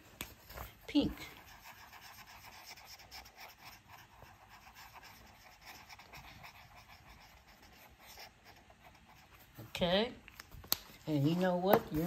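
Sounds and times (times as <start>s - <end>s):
marker scratching on paper: 0.2s - 10.0s, 11.1s - 12.0s.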